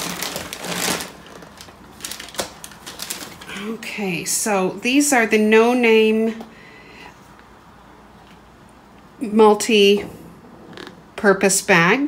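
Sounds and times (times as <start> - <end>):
plastic bags rustling: 0.0 - 3.9.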